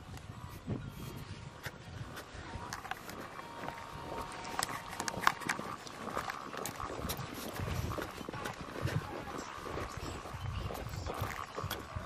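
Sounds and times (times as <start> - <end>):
footsteps in snow: 0.5 - 12.0.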